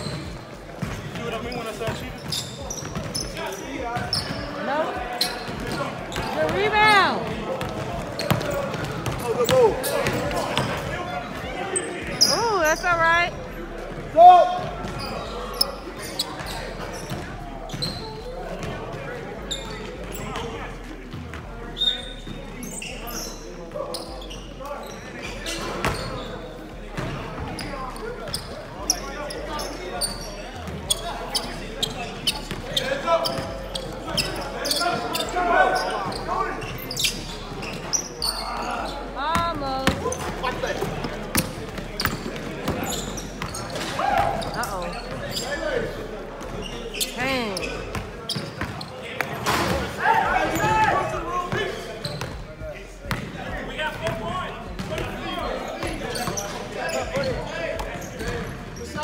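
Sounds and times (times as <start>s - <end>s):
players calling out: 0.0s - 59.0s
basketballs bouncing on hardwood: 5.4s - 10.9s, 39.3s - 44.3s.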